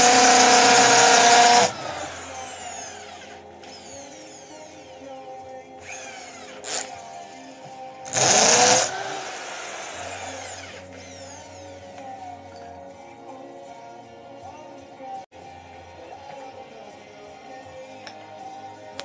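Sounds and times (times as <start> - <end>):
electric drill whirring: 0.0 - 5.2, 5.8 - 12.0.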